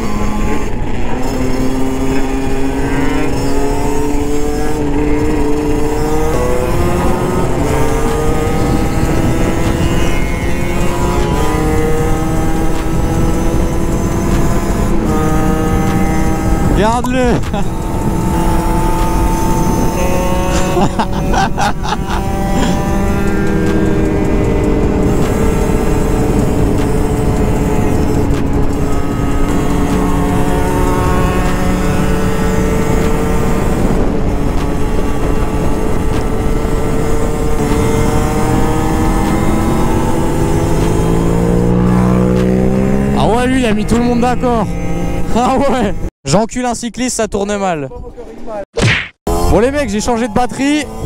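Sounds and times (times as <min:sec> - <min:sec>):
two-stroke motorcycle engine: 0:00.0 - 0:46.1, 0:49.3 - 0:51.0
wind rumble on microphone: 0:00.0 - 0:46.1.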